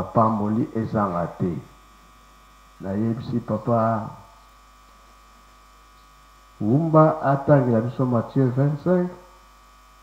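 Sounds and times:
man speaking into microphone: 0.0 - 1.7, 2.8 - 4.4, 6.6 - 9.3
steady electrical hum: 0.0 - 10.0.

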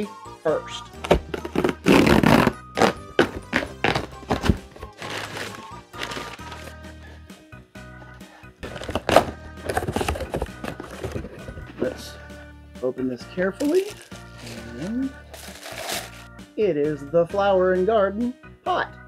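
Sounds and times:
background music: 0.0 - 19.0
box thunks: 1.0 - 6.3, 8.6 - 11.7
cardboard tearing: 1.0 - 6.7, 8.6 - 11.4, 13.7 - 16.3
cardboard rustling: 1.0 - 6.8, 8.6 - 11.8, 13.6 - 16.3.

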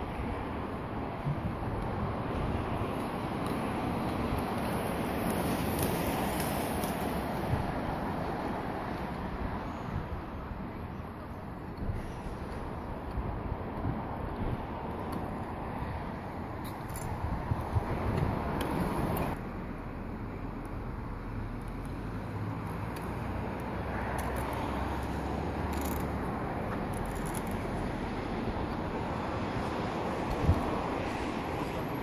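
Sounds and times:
outdoor background noise: 0.0 - 32.0
wind rumbling on microphone: 0.0 - 32.0.

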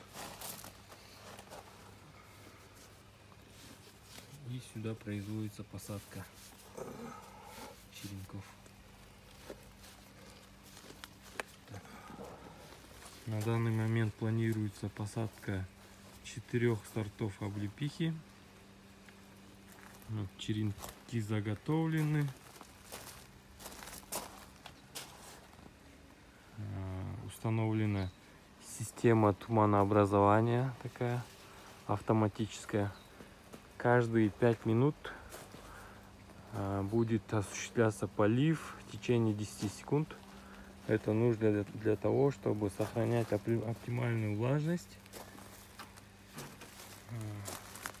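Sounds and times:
hands rustling plant cuttings: 0.0 - 16.2
footsteps crunching on gravel: 0.0 - 26.2, 28.8 - 48.0.

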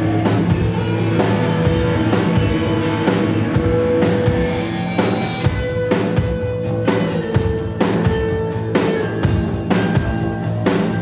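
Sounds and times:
drum and cymbal hits: 0.0 - 11.0
rock band playing live: 0.0 - 11.0.

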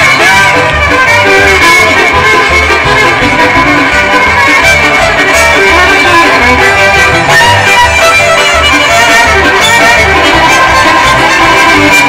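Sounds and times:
bluegrass band playing: 0.0 - 12.0
fiddle: 0.0 - 12.0
upright bass notes: 0.0 - 12.0.

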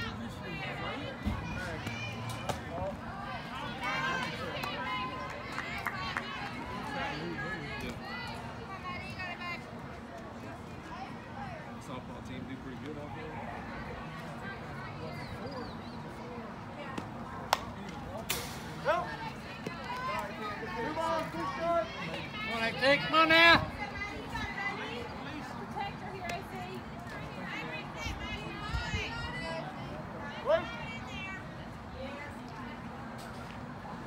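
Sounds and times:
spectators shouting and cheering: 0.0 - 9.4, 18.8 - 31.5
crowd chatter: 0.0 - 34.0.

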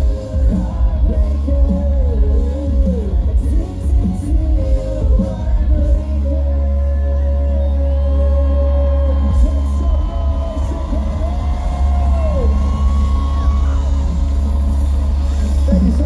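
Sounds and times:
live rock band playing loudly: 0.0 - 16.0.

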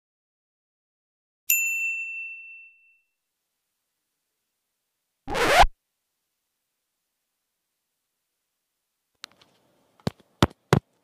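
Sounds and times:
bright ding chime: 1.5 - 3.1
scratchy burst of noise: 5.3 - 5.7.

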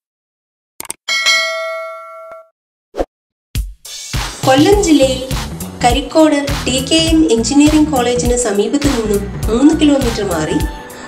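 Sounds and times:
bell chime: 1.1 - 2.5.

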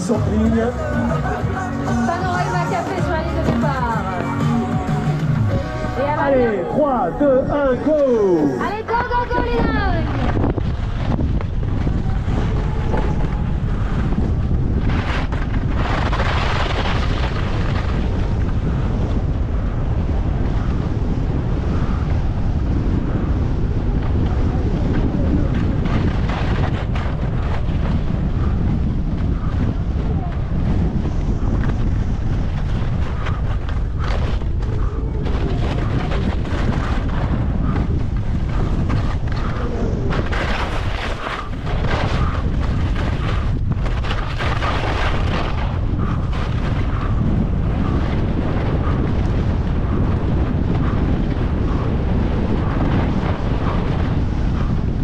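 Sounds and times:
wind buffeting microphone: 0.0 - 55.0
snowboard scraping on snow: 38.5 - 46.8.

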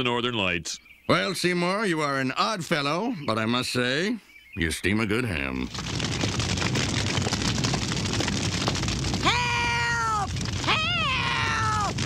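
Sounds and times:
fire crackling: 4.9 - 12.0.

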